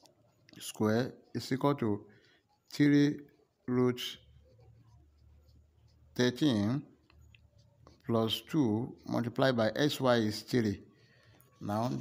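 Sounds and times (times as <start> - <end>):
pencil scratching on paper: 0.0 - 10.8, 11.4 - 12.0.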